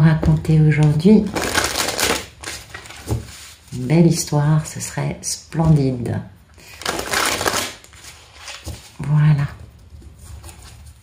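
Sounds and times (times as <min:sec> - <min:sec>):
cards riffle-shuffled: 0:06.8 - 0:08.8.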